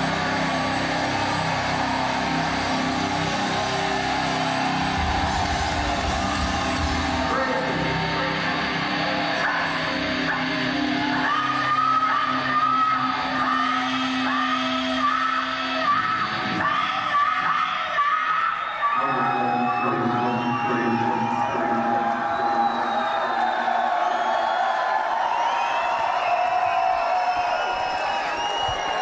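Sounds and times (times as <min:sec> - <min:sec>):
crowd cheering and yelling: 0:00.0 - 0:29.0.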